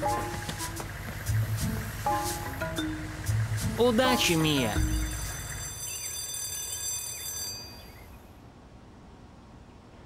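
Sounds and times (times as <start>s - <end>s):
faint bird chirps: 4.8s - 8.4s.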